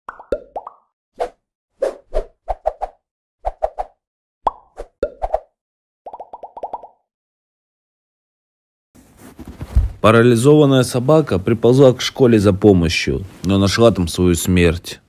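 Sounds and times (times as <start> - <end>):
bubbly pop sound effects: 0.1 - 0.9, 6.1 - 7.0.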